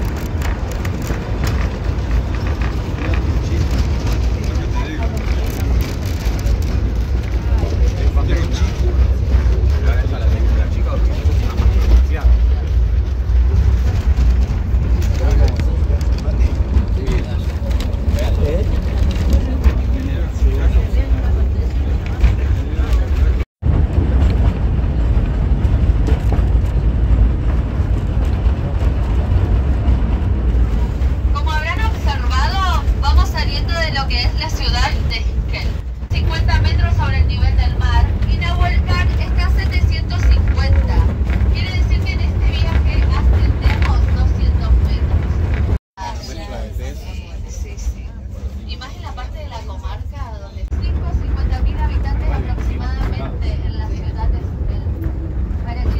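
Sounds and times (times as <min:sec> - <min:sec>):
train rumbling: 0:00.0 - 0:55.9.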